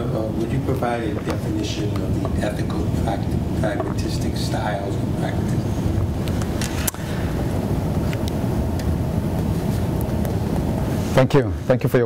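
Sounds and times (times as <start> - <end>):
low rumbling noise: 0.0 - 11.7.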